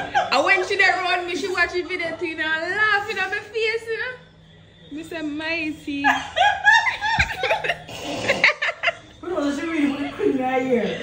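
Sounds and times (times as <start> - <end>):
woman laughing: 5.9 - 9.0.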